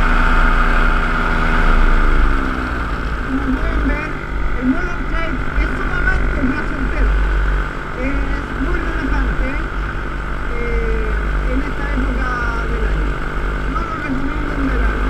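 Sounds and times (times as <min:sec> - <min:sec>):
paramotor engine running: 0:00.0 - 0:15.0.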